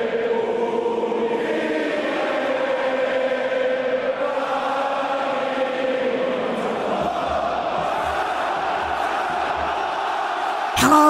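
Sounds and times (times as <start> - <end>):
many voices singing held notes: 0.0 - 11.0.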